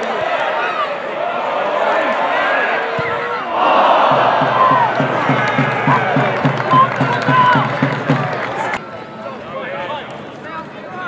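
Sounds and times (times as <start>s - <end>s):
football crowd roaring and cheering: 0.0s - 11.0s
steady rhythmic beat: 3.6s - 8.8s.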